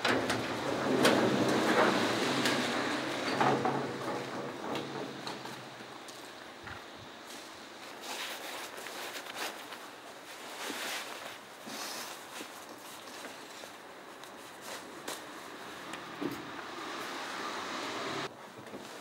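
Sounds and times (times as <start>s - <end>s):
garage door sliding and rattling: 0.0s - 6.6s.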